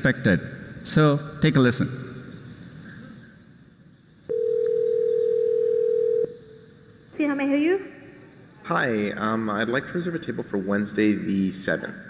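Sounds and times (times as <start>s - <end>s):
telephone ringback tone: 4.3s - 6.3s.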